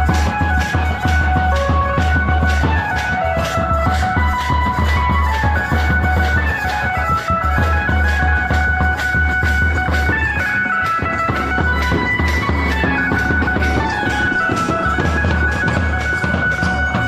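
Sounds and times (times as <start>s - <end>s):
large drums beating: 0.0s - 17.0s
wavering melody line: 0.0s - 17.0s.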